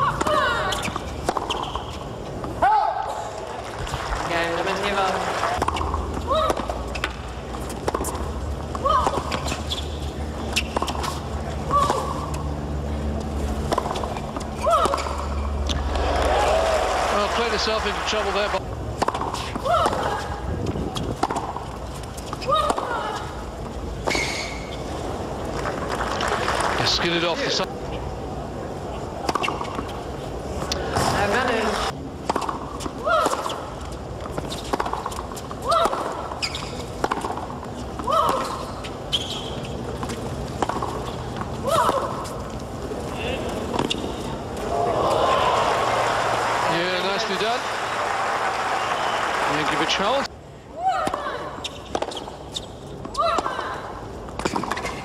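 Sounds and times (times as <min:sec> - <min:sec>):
crowd noise: 0:02.6 - 0:21.6, 0:22.4 - 0:32.1, 0:41.5 - 0:51.7
racket hitting tennis ball: 0:05.6 - 0:12.4, 0:13.4 - 0:16.2, 0:17.4 - 0:20.2, 0:20.9 - 0:23.3, 0:32.2 - 0:38.9, 0:40.0 - 0:42.4, 0:54.4 - 0:55.0
racket striking tennis ball: 0:13.6 - 0:16.0, 0:34.3 - 0:36.3, 0:36.9 - 0:38.8
crowd applause and cheering: 0:15.7 - 0:18.6, 0:25.7 - 0:27.3, 0:44.6 - 0:50.3.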